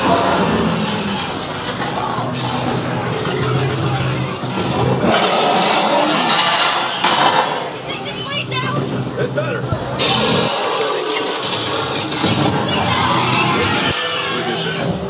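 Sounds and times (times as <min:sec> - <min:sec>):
unintelligible voices: 0:00.0 - 0:15.0
noisy sound effects: 0:08.5 - 0:15.0.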